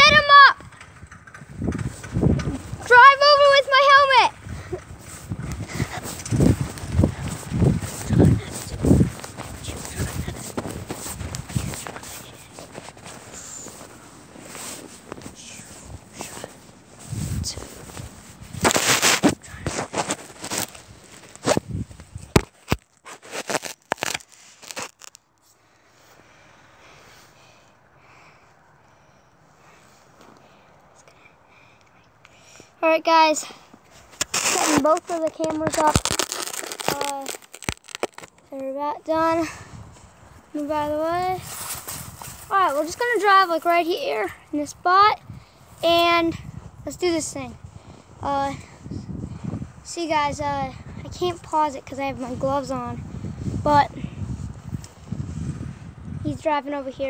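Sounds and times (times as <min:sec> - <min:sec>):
scrape: 0:07.2 - 0:21.6, 0:23.0 - 0:24.9, 0:33.9 - 0:34.8
phone camera handling rustles: 0:17.8 - 0:25.4.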